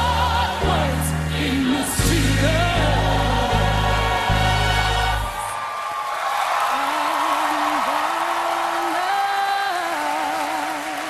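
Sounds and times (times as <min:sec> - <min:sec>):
audience applauding and cheering: 0:03.7 - 0:11.0.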